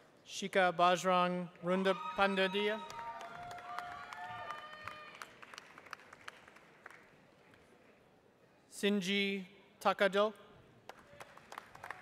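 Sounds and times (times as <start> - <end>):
faint cheers: 1.7 - 5.3
audience applause: 2.8 - 7.0, 10.9 - 12.0.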